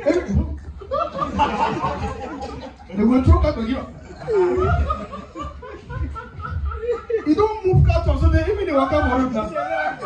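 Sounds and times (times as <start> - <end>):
audience laughter: 0.0 - 7.7, 8.7 - 10.0.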